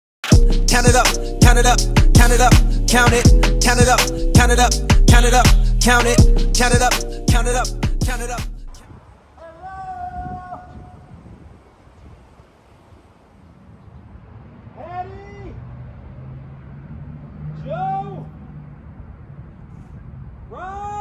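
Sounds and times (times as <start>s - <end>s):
drawn-out rising and falling calls: 0.5s - 16.3s.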